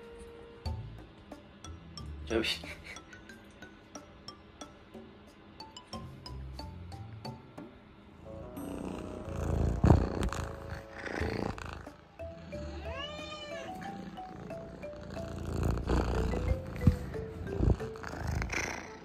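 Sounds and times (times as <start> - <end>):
light background music: 0.0 - 19.0
kitten meowing: 12.7 - 13.9.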